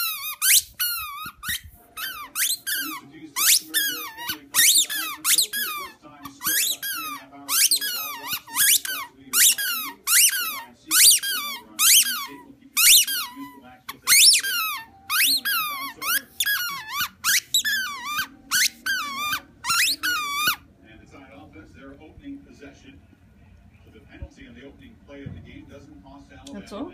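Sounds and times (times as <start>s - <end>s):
squeaky ball squeaking: 0.0s - 20.6s.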